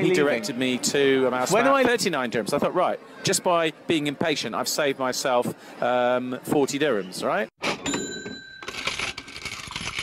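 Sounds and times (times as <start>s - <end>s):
coins clinking and clattering: 7.9s - 10.0s.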